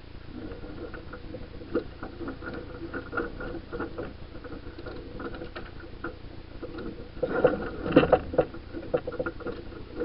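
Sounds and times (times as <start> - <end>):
rumble of wind and water: 0.0 - 10.0.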